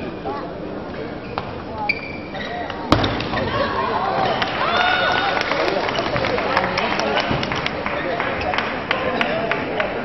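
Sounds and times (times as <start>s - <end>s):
crowd voices and shouts: 0.0s - 10.0s
shoe squeaks: 1.1s - 2.9s.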